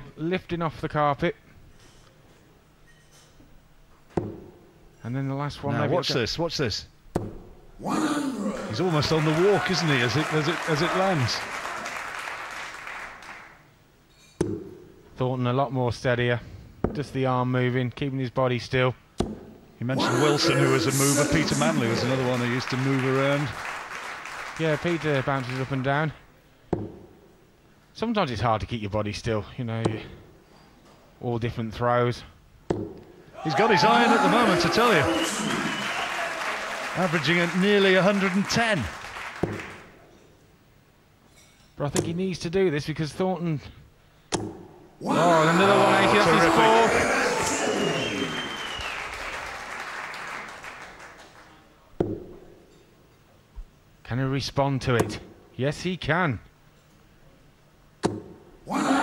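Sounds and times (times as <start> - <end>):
dart striking dartboard: 4.2 - 4.5, 44.3 - 44.6, 58.0 - 58.3
crowd applause: 8.6 - 13.6, 20.0 - 26.0, 33.4 - 39.9, 45.1 - 51.6
arena hum: 19.8 - 25.8, 44.4 - 49.9.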